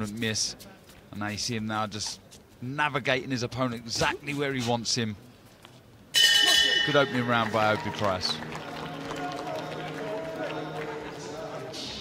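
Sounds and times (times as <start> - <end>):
indistinct voices: 6.5 - 12.0.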